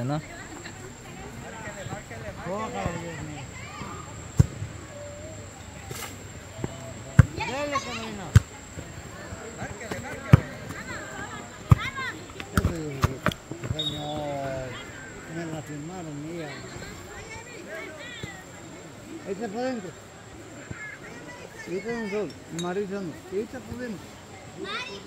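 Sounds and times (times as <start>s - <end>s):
players calling and shouting: 0.0s - 25.0s.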